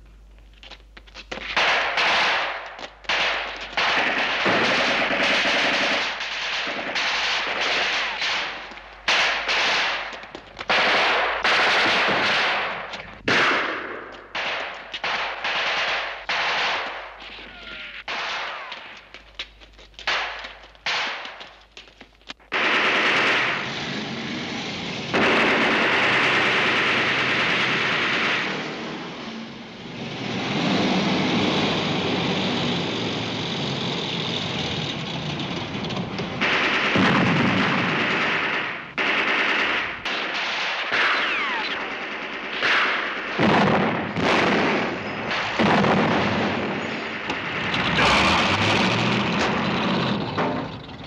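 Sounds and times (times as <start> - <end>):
rifle and machine gun fire: 1.4 - 19.1, 20.0 - 21.7, 22.5 - 24.1, 25.0 - 29.1, 36.3 - 50.1.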